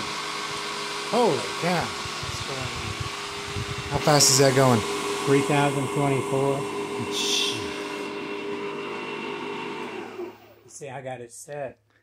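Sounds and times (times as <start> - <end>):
electric motor whine: 0.0 - 10.7.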